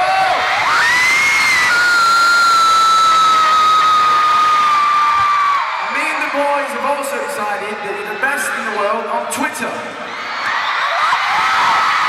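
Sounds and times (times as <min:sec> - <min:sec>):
high-pitched scream: 0:00.0 - 0:06.4
crowd screaming and cheering: 0:00.0 - 0:12.0.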